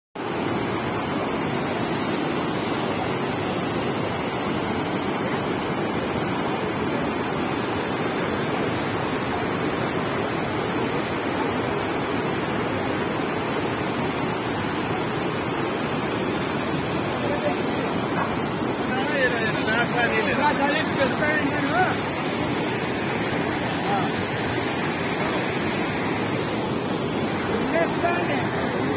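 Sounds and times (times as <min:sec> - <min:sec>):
water rushing over rocks: 0:00.2 - 0:28.9.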